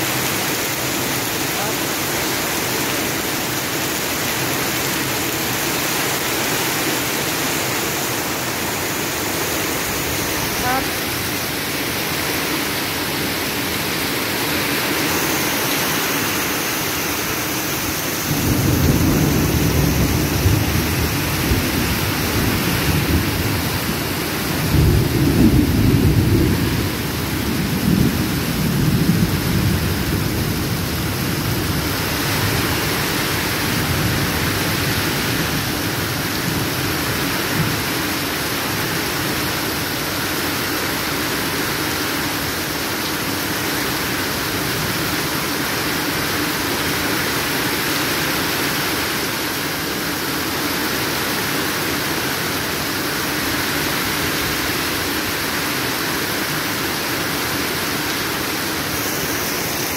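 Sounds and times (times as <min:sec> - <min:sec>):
heavy rain pouring: 0:00.0 - 0:59.9.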